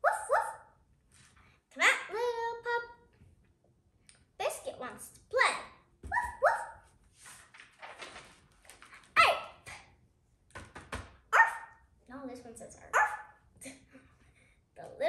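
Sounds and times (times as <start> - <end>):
girl imitating puppy barks: 0.0 - 0.7, 5.4 - 6.8, 9.2 - 9.9, 11.3 - 11.8, 12.9 - 13.9.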